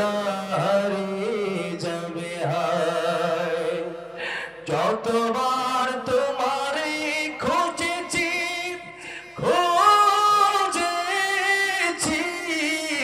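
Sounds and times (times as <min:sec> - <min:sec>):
man chanting: 0:00.0 - 0:13.0.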